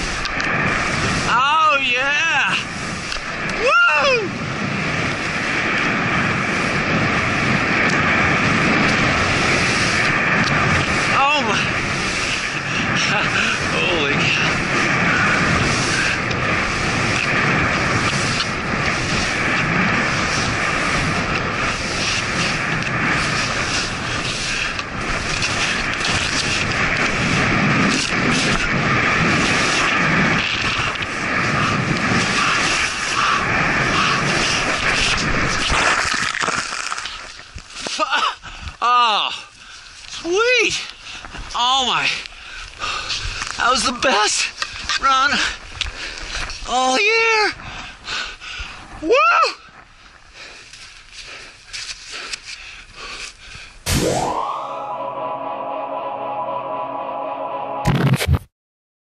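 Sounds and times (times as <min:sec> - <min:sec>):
skis hissing through snow: 0:00.0 - 0:03.4, 0:04.0 - 0:38.0, 0:50.0 - 0:53.4
wind buffeting microphone: 0:00.0 - 0:54.9
person whooping: 0:03.6 - 0:04.3
music with rising swoop: 0:53.9 - 0:57.9.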